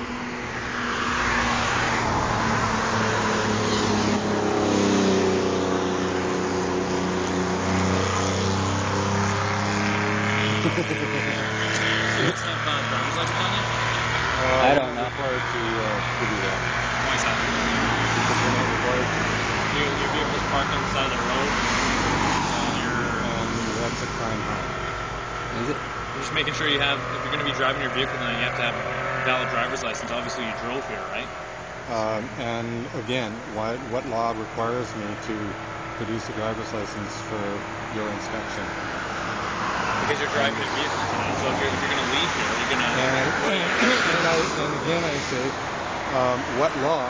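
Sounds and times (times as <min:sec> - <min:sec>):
cars passing by: 0:00.0 - 0:47.0.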